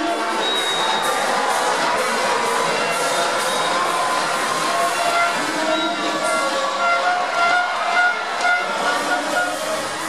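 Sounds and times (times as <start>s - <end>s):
large crowd hubbub: 0.0s - 10.0s
music over public-address system: 0.0s - 10.0s.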